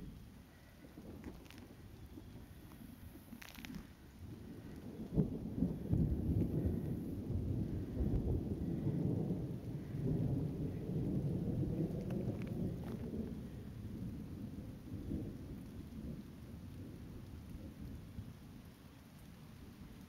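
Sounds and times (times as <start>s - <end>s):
thunder rolling: 0.6s - 18.3s.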